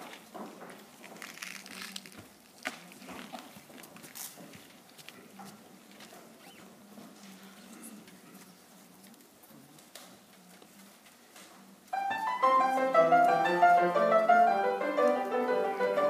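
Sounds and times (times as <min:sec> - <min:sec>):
rustling: 0:00.0 - 0:07.4
footsteps: 0:00.0 - 0:16.0.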